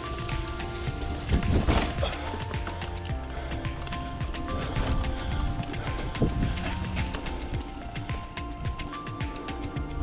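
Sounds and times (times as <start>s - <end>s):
background music: 0.0s - 10.0s
bike knocking over rough trail: 0.3s - 8.3s.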